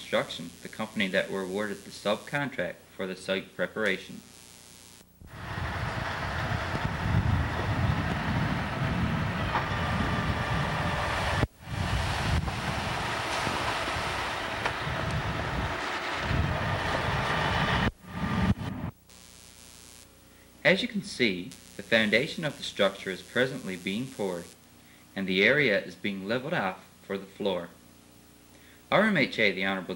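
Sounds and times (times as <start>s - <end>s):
wind buffeting microphone: 5.3s - 18.8s
diesel machinery rumbling: 5.3s - 18.9s.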